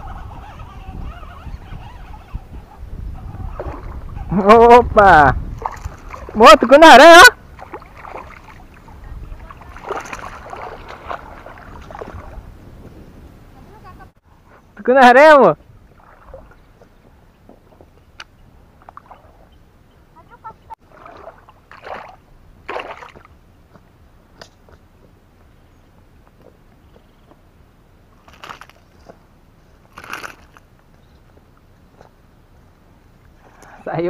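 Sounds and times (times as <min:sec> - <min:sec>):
small water splashes: 0:05.5 - 0:06.5, 0:07.3 - 0:12.5, 0:15.8 - 0:17.0, 0:18.8 - 0:19.5, 0:20.8 - 0:23.4
rustles in wet grass: 0:07.5 - 0:12.7.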